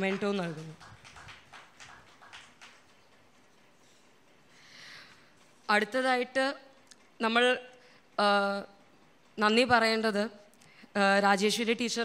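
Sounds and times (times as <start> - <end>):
woman's voice through microphone: 0.0 - 0.8, 5.7 - 8.8, 9.4 - 12.0.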